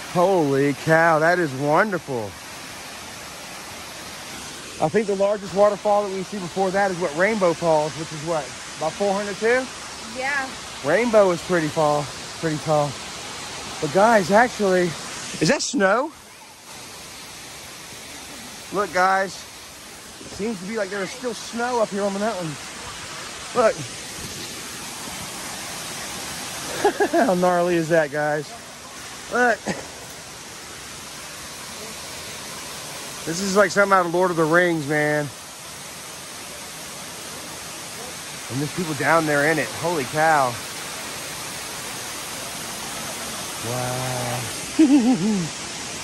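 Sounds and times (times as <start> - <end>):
waterfall rushing: 0.0 - 46.0.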